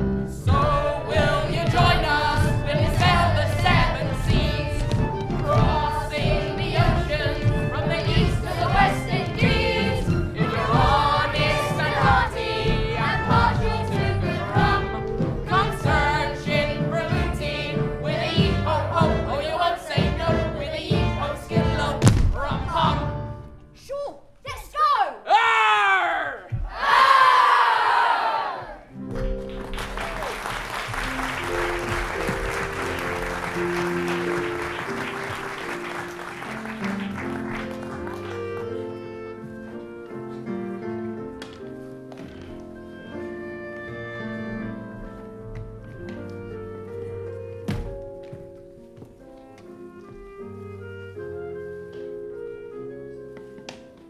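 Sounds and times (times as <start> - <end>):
musical accompaniment: 0.0 - 23.8, 28.6 - 54.0
boys choir singing: 0.3 - 23.2
audience applause: 29.4 - 38.9.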